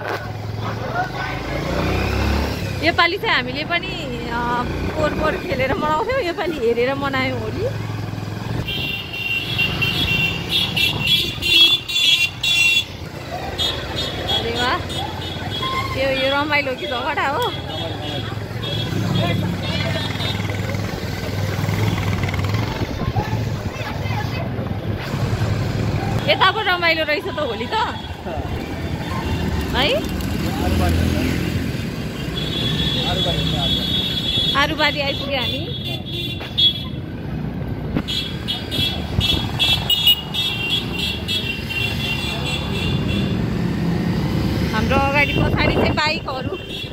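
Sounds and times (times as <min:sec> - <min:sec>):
motorcycle running at low speed: 0:00.0 - 0:08.9, 0:18.3 - 0:26.4, 0:28.0 - 0:34.6
road noise: 0:00.0 - 0:46.9
motorcycle engine running: 0:16.7 - 0:27.1.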